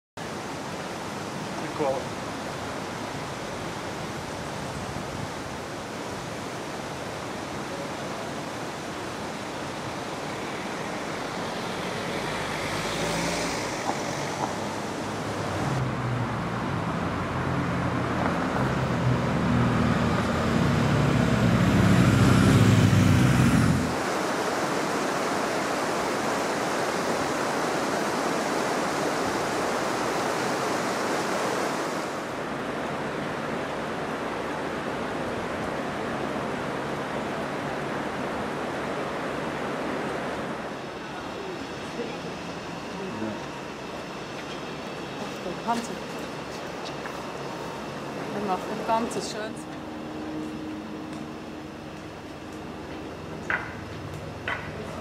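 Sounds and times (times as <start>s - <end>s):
steady outdoor rushing noise: 0.2s - 55.0s
motor vehicle engine: 11.2s - 24.0s.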